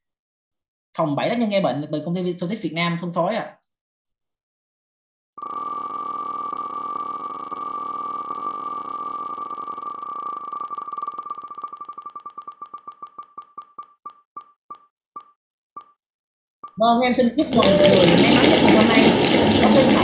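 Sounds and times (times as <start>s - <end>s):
digital prize wheel ticking: 5.4s - 16.0s.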